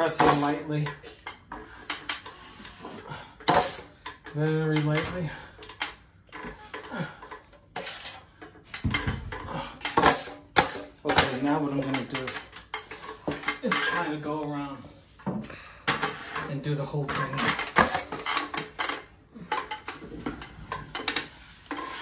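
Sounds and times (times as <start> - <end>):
taping knife scraping on hawk: 3.5 - 4.0, 7.8 - 8.3.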